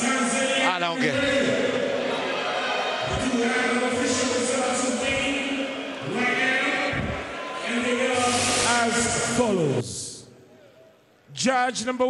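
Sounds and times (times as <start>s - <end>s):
men talking: 0.0s - 10.4s
crowd noise: 0.0s - 11.4s.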